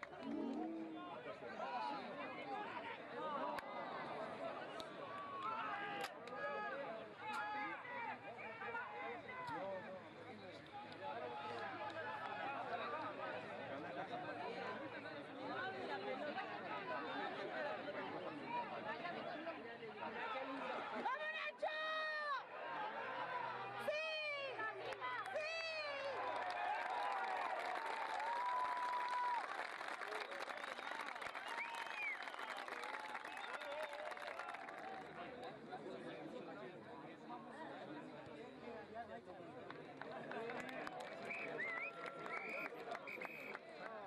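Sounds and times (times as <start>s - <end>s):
spectators shouting and clapping: 0.0s - 9.9s, 10.6s - 13.8s, 20.2s - 35.6s, 39.5s - 44.0s
chatter of voices: 0.0s - 26.2s.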